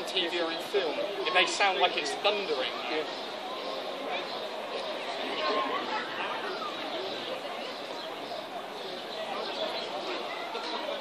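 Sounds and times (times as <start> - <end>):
indistinct chatter of people: 0.0 - 11.0.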